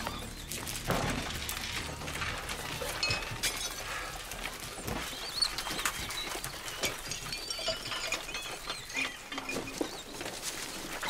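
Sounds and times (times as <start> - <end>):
rats scrambling: 0.0 - 11.0
glass jars and crockery rattling: 1.7 - 4.4, 5.0 - 11.0.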